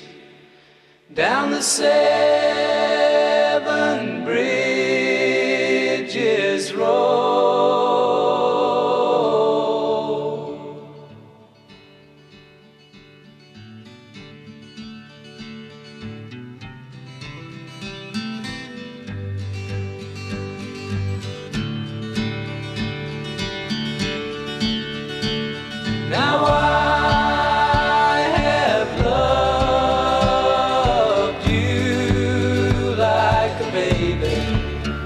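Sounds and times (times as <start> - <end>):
harmony voices singing: 0.0 - 11.6, 25.8 - 35.0
plucked acoustic guitar: 11.1 - 35.0
bass line: 26.1 - 35.0.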